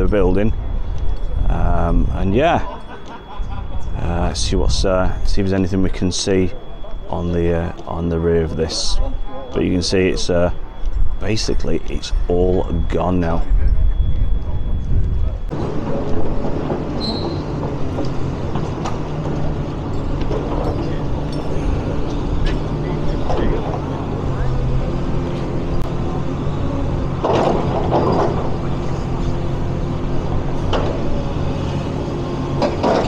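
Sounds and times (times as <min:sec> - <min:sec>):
excavator diesel engine running: 0:00.0 - 0:33.0.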